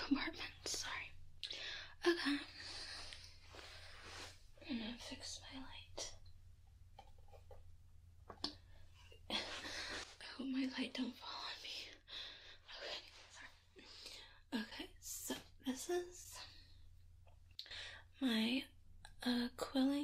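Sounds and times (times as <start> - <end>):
person whispering: 0.0 - 1.2, 4.6 - 6.2.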